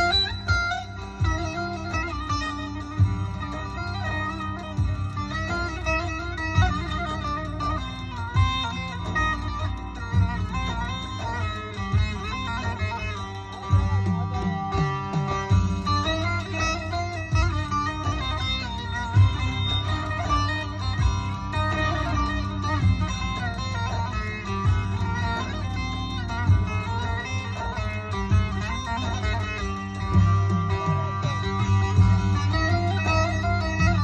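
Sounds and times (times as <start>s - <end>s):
plucked long-necked lute melody: 0.0s - 34.0s
steady low beat: 0.0s - 34.0s.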